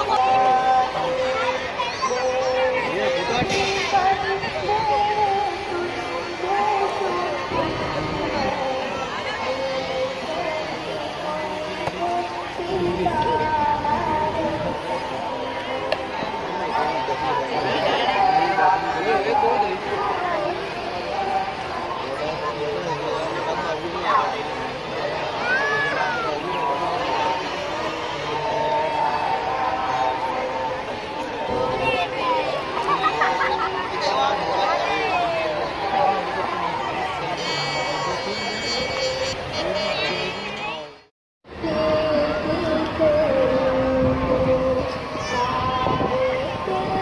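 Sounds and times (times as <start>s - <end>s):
crowd chatter: 0.0s - 47.0s.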